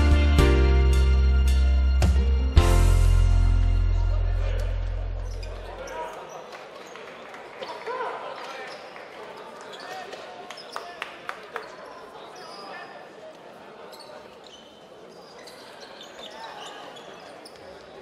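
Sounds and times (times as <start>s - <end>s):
sneaker squeaks: 5.2s - 7.1s, 8.5s - 11.0s, 11.6s - 13.1s, 13.8s - 18.0s.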